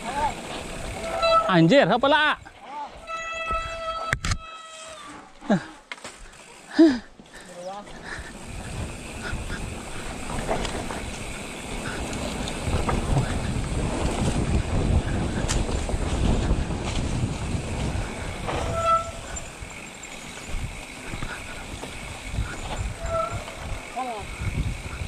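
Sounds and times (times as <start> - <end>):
bike tyres and frame rattling: 0.0 - 25.0
wind buffeting microphone: 8.0 - 25.0.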